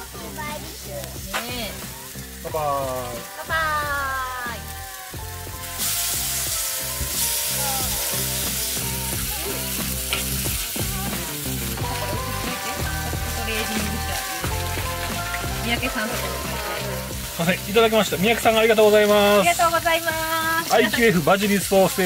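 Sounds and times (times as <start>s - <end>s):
background music: 0.0s - 22.0s
meat sizzling on a grill: 0.0s - 22.0s.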